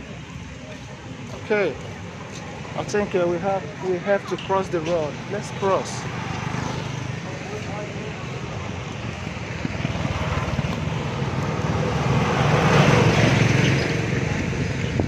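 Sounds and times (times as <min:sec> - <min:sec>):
street traffic: 0:00.0 - 0:15.0
vehicle passing close by: 0:05.9 - 0:15.0.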